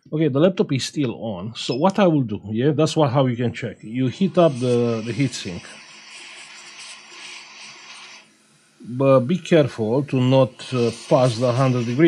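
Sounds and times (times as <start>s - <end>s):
hot air gun hissing: 3.9s - 12.0s.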